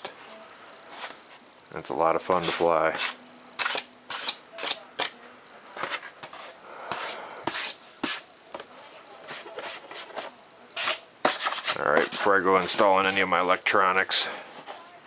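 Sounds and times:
hands rubbing foam board: 0:05.8 - 0:08.3, 0:09.2 - 0:13.6.

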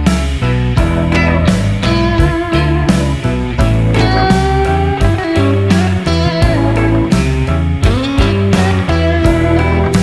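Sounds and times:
guitar-led rock music: 0:00.0 - 0:10.0.

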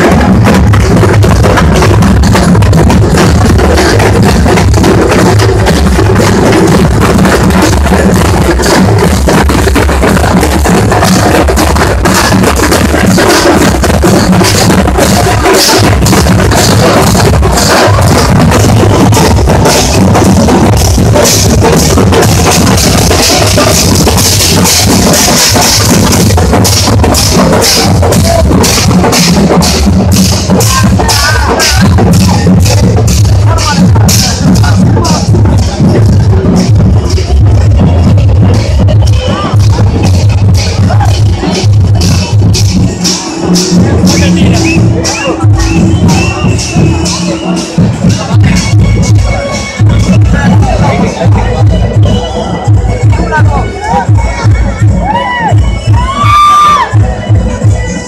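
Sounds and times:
loud music with fast drumming: 0:00.0 - 0:58.0.

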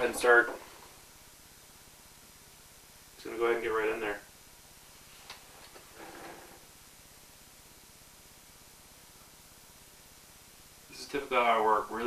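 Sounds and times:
person shifting in chair: 0:05.1 - 0:06.6.

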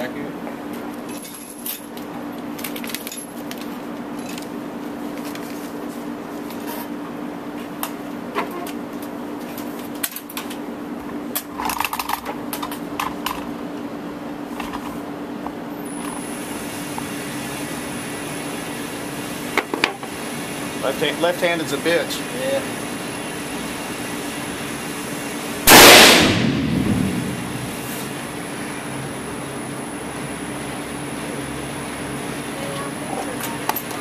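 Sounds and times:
ventilation hum: 0:00.0 - 0:34.0.

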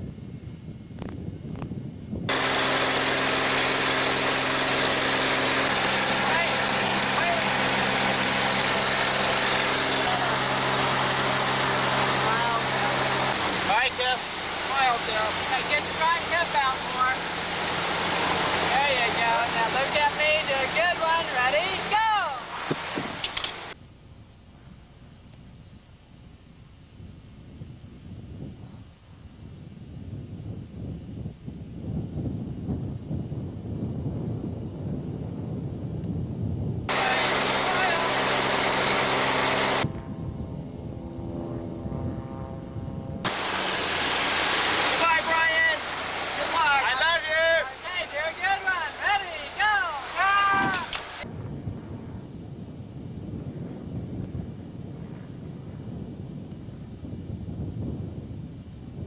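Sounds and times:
wind rushing: 0:00.0 - 0:23.8, 0:27.0 - 0:59.0
airplane engine noise: 0:00.0 - 0:59.0
man's voice: 0:45.0 - 0:45.8, 0:46.4 - 0:50.9.

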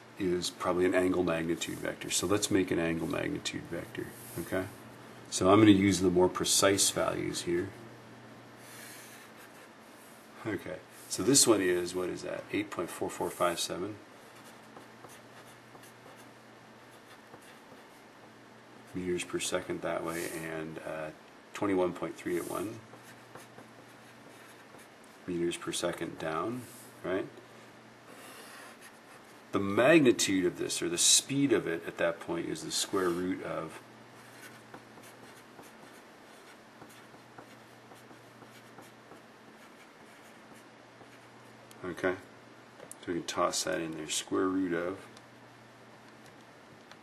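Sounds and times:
low steady hum: 0:00.0 - 0:47.0
pencil scratching on paper: 0:14.3 - 0:18.1, 0:22.3 - 0:24.9, 0:28.1 - 0:29.3, 0:34.2 - 0:41.3.

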